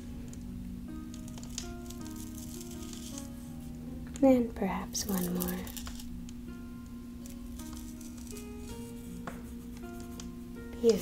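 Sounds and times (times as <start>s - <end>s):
steady low drone: 0.0s - 10.8s
slow held music notes: 0.0s - 11.0s.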